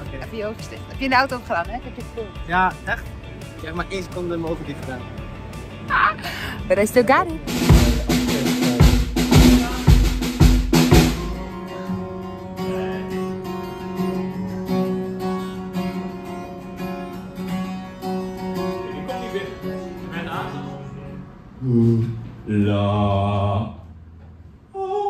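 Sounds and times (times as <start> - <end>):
acoustic guitar chords: 6.8 - 24.1
drum kit kick and snare hits: 7.4 - 11.5.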